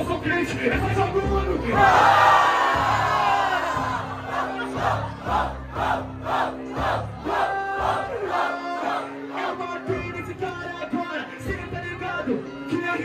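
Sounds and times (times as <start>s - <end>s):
hip-hop beat: 0.0s - 13.0s
crowd cheering: 1.8s - 9.5s
crowd shouting in rhythm: 1.8s - 9.6s.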